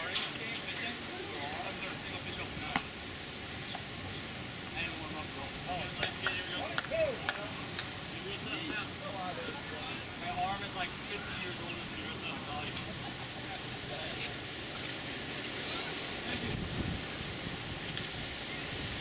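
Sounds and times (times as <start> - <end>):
indistinct voices and chatter: 0.0 - 19.0
steady outdoor hiss: 0.0 - 19.0.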